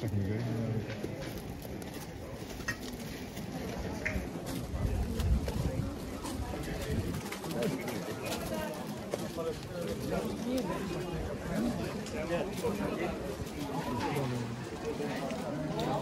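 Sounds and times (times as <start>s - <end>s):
murmur of crowd talking: 0.0s - 16.0s.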